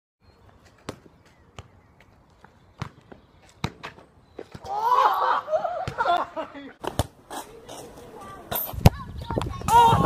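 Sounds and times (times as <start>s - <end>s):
football kicked and bouncing: 0.7s - 4.7s, 5.8s - 6.2s, 6.8s - 7.2s.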